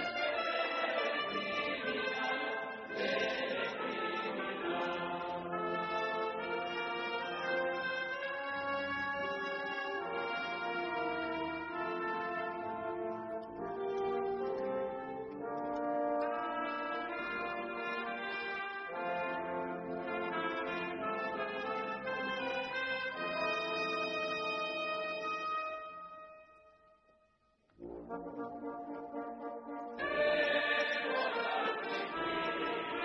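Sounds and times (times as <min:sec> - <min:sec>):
slow brass music: 0:00.0 - 0:27.1, 0:27.8 - 0:33.0.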